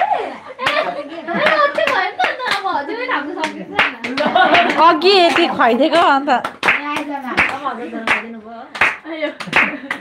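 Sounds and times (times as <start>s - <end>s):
lively voices talking: 0.0s - 10.0s
hand claps: 0.6s - 2.7s, 3.4s - 10.0s.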